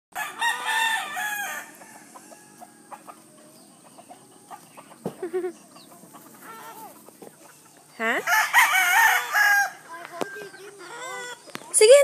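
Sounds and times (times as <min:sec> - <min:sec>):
rooster crowing: 0:00.2 - 0:03.1, 0:08.1 - 0:11.4.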